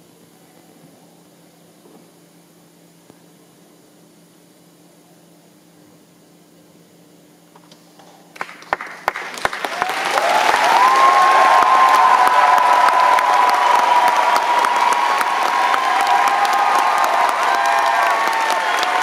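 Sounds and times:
audience applauding: 8.4s - 19.0s
audience cheering: 9.1s - 19.0s.

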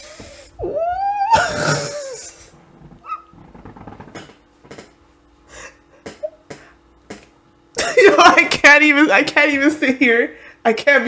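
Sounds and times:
woman laughing: 0.7s - 3.3s, 7.8s - 8.6s.

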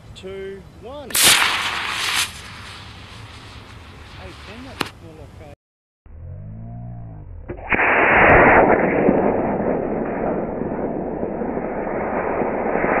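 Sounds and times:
rocket motor rushing hiss: 1.1s - 4.9s.

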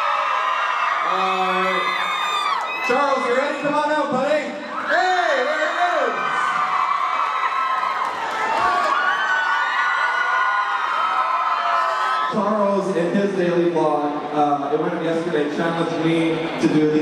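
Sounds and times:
audience cheering and whooping: 0.0s - 12.6s
man talking: 2.8s - 6.3s, 12.3s - 17.0s.

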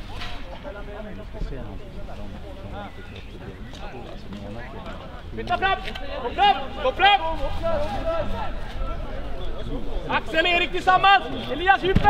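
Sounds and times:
people shouting on a football pitch: 5.5s - 12.0s.

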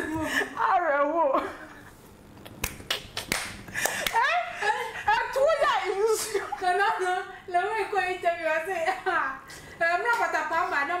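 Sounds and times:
fingers snapping: 2.4s - 3.6s.

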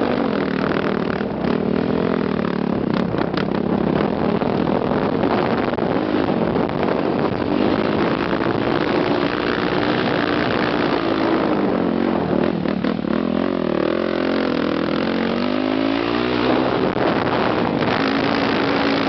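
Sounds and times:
motocross bike engine revving: 0.0s - 19.0s
steady rush of noise: 0.0s - 19.0s.

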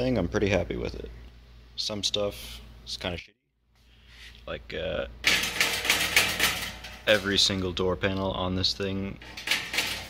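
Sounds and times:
sheet-metal panel rattling: 5.2s - 7.6s, 9.2s - 10.0s.

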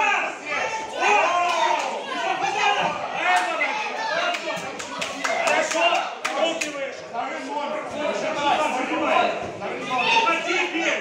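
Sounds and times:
crowd shouting: 0.0s - 6.6s
spectators clapping: 1.4s - 2.0s, 4.2s - 6.8s.

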